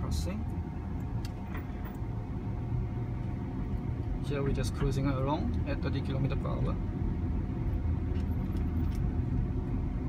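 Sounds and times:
road and tyre rumble: 0:00.0 - 0:10.0.

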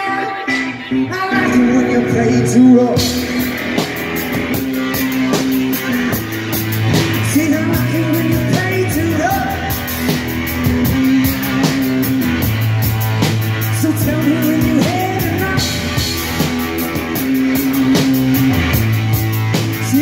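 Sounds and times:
distorted electric guitar riffing: 0:00.0 - 0:20.0
drum kit beat: 0:01.4 - 0:20.0.

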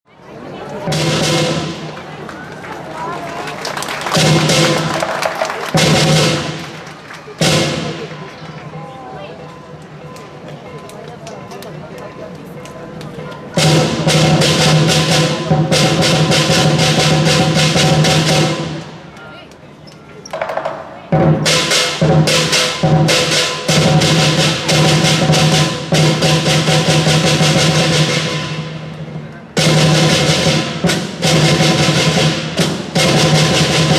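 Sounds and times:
crowd voices: 0:00.0 - 0:33.9
drum cymbals and gong band: 0:00.8 - 0:02.0, 0:05.8 - 0:08.5, 0:13.2 - 0:19.1, 0:21.1 - 0:33.9.

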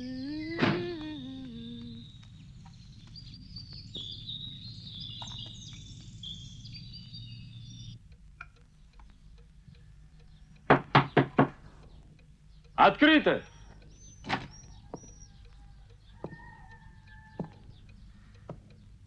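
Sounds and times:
birds chirping: 0:00.0 - 0:19.0
knocks on a door: 0:10.7 - 0:11.6.

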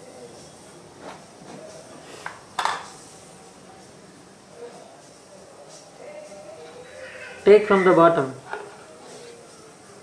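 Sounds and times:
cap clacking on tiled floor: 0:02.2 - 0:03.0.

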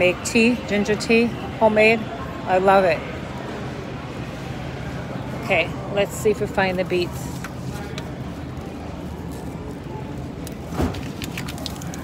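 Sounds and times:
supermarket background hum: 0:00.0 - 0:12.0
vegetables rustling: 0:10.8 - 0:12.0.

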